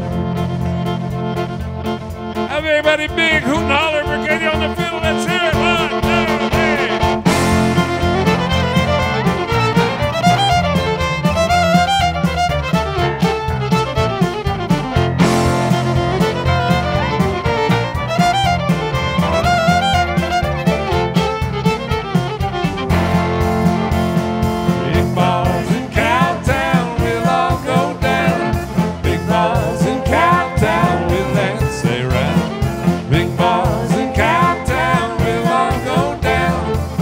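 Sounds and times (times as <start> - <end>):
fiddle solo: 0.0 - 37.0
swing band playing: 0.0 - 37.0.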